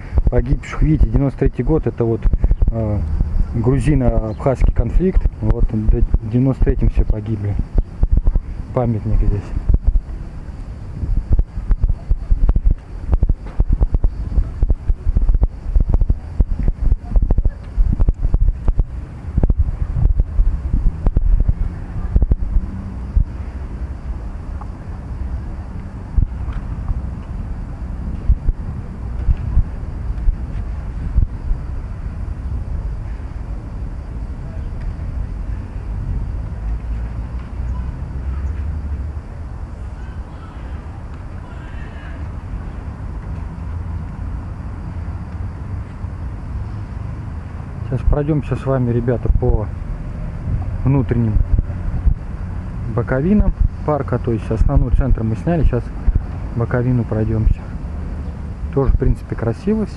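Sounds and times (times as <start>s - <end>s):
wind buffeting microphone: 0.0s - 24.4s, 25.2s - 34.1s, 49.2s - 53.9s, 54.6s - 56.6s.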